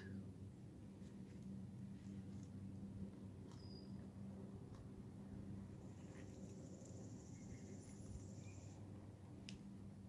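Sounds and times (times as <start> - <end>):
steady low hum: 0.0 - 10.0
short high bird chirp: 3.6 - 4.0.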